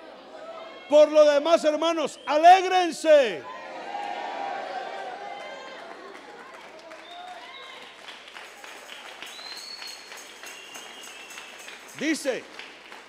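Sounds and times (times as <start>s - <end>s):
crowd clapping: 5.0s - 13.0s.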